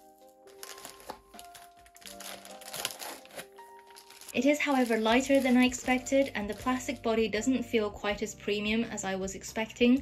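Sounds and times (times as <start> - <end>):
plastic bag crinkling: 0.0 - 7.0
soft background music: 0.0 - 10.0.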